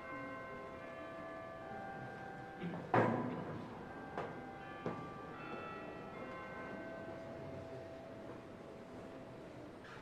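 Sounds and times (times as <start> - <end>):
bells ringing: 0.0 - 2.7, 3.6 - 8.6.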